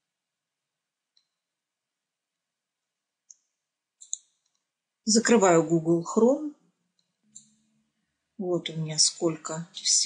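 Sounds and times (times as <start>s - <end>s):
computer mouse clicks: 3.3s - 4.7s.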